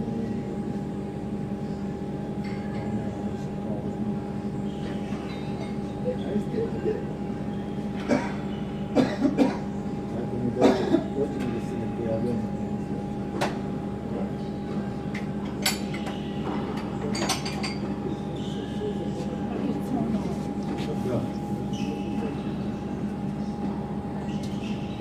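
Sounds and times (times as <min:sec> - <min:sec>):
mechanical hum: 0:00.0 - 0:25.0.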